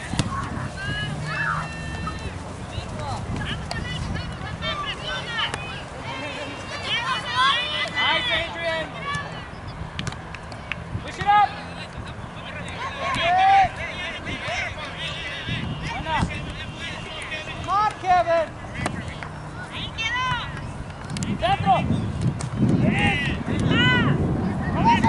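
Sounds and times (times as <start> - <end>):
players and spectators shouting: 0.0 - 9.8, 11.0 - 20.8, 22.8 - 25.0
low rumble of wind: 0.0 - 25.0.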